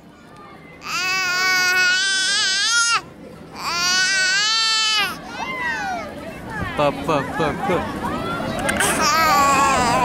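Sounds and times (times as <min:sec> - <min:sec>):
infant crying: 0:03.6 - 0:05.9, 0:08.9 - 0:10.0.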